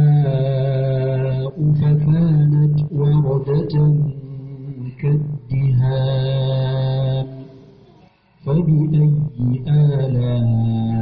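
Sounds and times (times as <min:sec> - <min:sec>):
person chanting recitation: 0:00.0 - 0:11.0.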